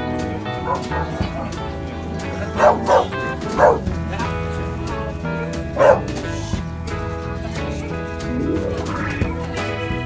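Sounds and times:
background music: 0.0s - 10.0s
dogs barking: 0.5s - 1.5s, 2.5s - 4.0s, 5.7s - 6.3s.

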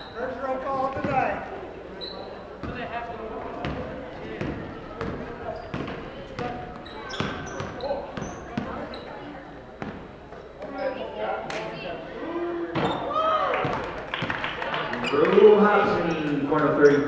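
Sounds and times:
shoes squeaking on court: 2.0s - 2.9s, 3.6s - 11.1s, 12.8s - 13.1s, 14.9s - 17.0s
basketball bouncing on wooden floor: 2.6s - 2.9s, 3.6s - 8.8s.

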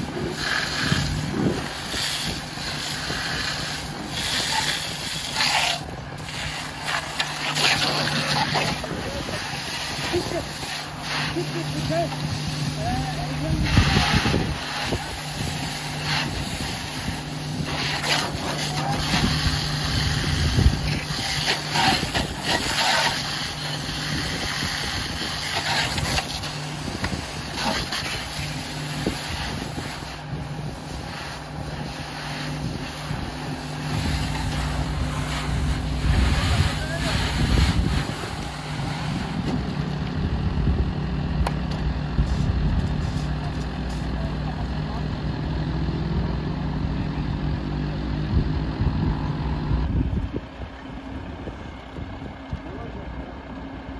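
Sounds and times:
steam hissing: 0.0s - 39.4s
fire hose spraying water: 0.0s - 45.1s
fire engine engine and pump: 0.0s - 53.9s.

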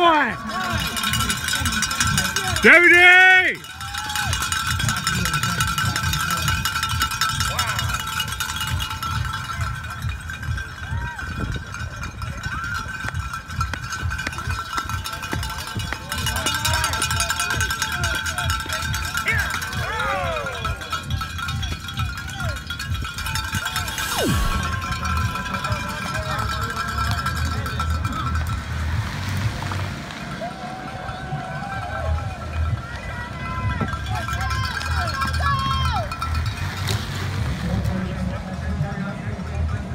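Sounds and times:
cowbells clanging: 0.0s - 24.2s, 24.8s - 29.8s, 31.1s - 37.4s.

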